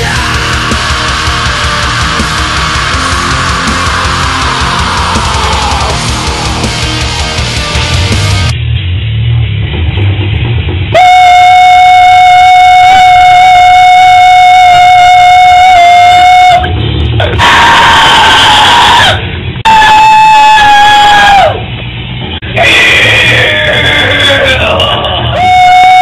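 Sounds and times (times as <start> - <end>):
man pig squeal screaming: 0.0 - 6.1, 17.2 - 21.6, 22.5 - 26.0.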